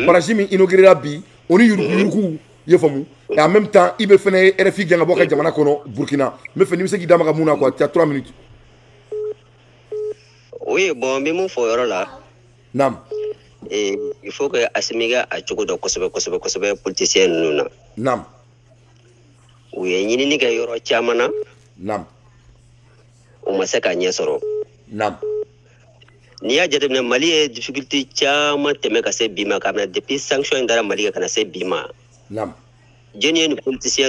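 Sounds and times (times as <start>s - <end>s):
man talking over telephone: 0.0s - 8.4s, 10.5s - 18.4s, 19.7s - 22.2s, 23.4s - 25.4s, 26.4s - 32.6s, 33.2s - 34.0s
telephone line beep: 9.1s - 10.6s, 13.1s - 14.3s, 24.3s - 25.5s.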